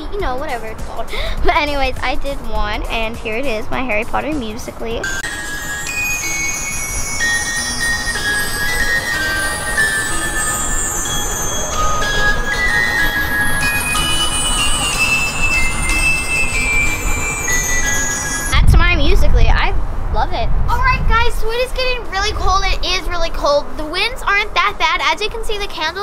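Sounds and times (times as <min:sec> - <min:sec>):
steady low rumble: 0:00.0 - 0:23.6
music from phone speaker: 0:05.0 - 0:18.6.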